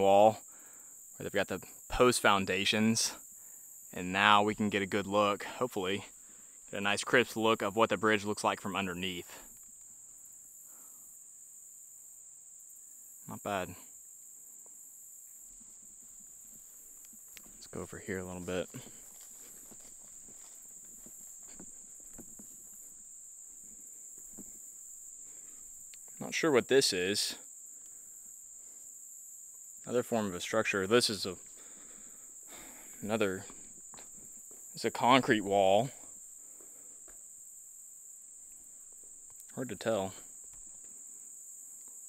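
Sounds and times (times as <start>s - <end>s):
high-pitched insect chorus: 0.0s - 42.0s
footsteps through brush and leaves: 18.6s - 24.7s.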